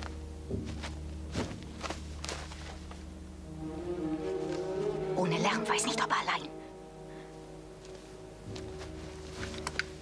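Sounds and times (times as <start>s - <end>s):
boot footsteps: 0.0s - 3.1s, 7.8s - 10.0s
steady low hum: 0.0s - 10.0s.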